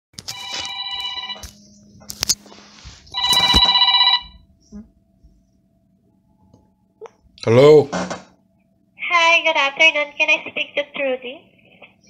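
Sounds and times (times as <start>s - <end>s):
electronic telephone ringing: 0.3s - 1.4s, 3.1s - 4.4s.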